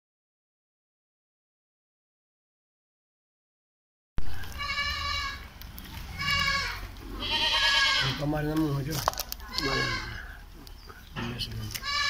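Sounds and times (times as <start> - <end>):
goat bleating: 4.4 - 8.6, 9.4 - 10.4, 11.7 - 12.0.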